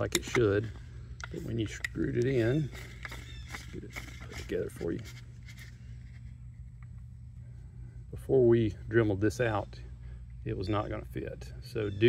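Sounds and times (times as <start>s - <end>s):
steady low hum: 0.0s - 12.0s
plastic housing rubbing and scraping: 1.2s - 7.1s.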